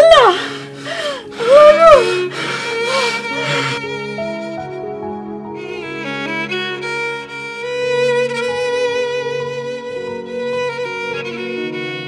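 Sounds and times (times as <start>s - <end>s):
held low string notes: 0.0s - 12.0s
slow violin melody: 0.0s - 12.0s.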